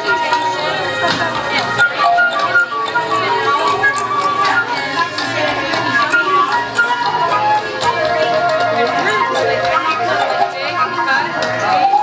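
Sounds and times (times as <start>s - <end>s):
flute melody: 0.0s - 12.0s.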